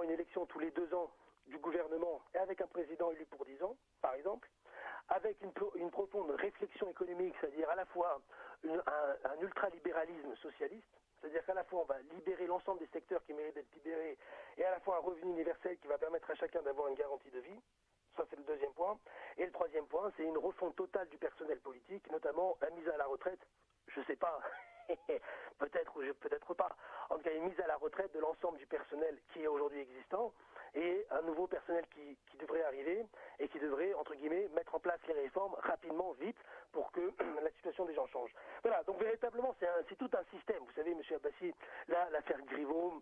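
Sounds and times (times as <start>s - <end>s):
man talking over telephone: 0.0s - 17.6s, 24.0s - 43.0s.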